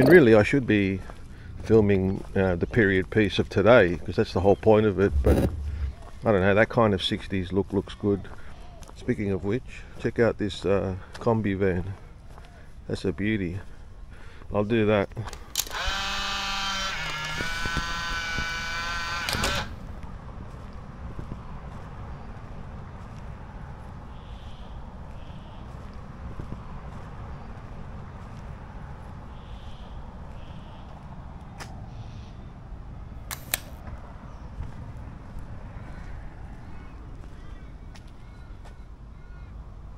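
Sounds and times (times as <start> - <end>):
steady pitched tone: 5.1 - 6.2
camera shutter clicks: 5.2 - 5.6, 15.3 - 16.6, 19.2 - 19.8, 33.3 - 33.8.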